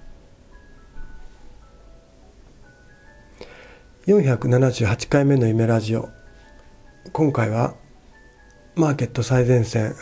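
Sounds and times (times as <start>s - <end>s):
slow bell-like melody: 0.0s - 10.0s.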